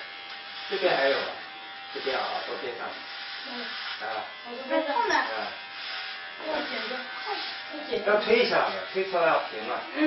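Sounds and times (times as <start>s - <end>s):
electric hair clippers buzzing: 0.0s - 10.0s.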